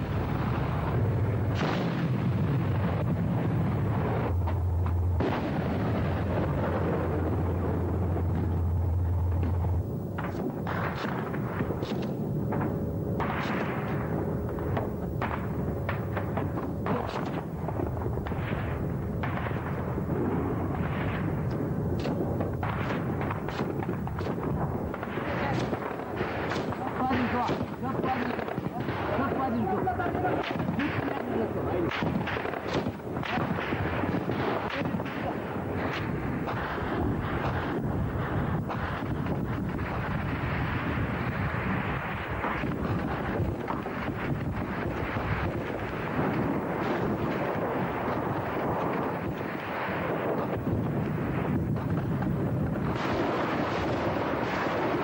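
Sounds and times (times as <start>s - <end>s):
continuous gunfire: 0.0s - 55.0s
heavy weapons firing: 0.0s - 55.0s
sharp crack: 0.0s - 55.0s
sharp gunshots: 0.0s - 55.0s
steady low drone: 2.6s - 28.5s.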